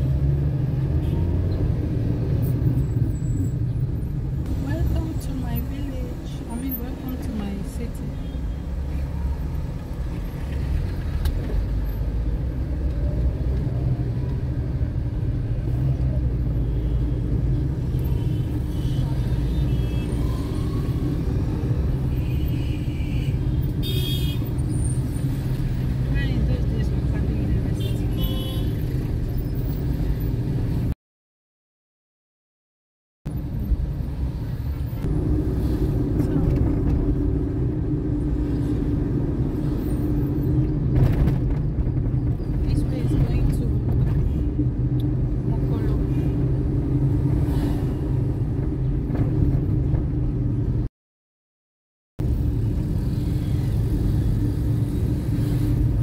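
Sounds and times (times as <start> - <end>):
car engine and road rumble: 0.0 - 31.0, 33.3 - 50.9, 52.2 - 56.0.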